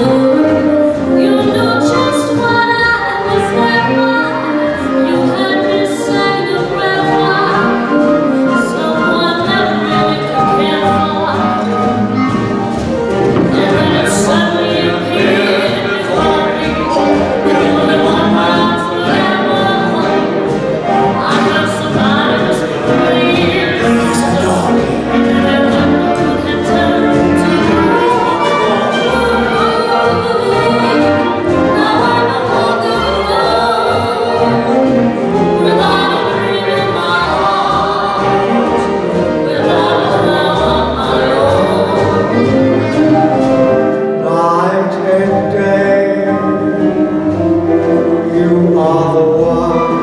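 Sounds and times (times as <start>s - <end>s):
dance band playing with singing: 0.0s - 50.0s
person singing: 44.1s - 50.0s.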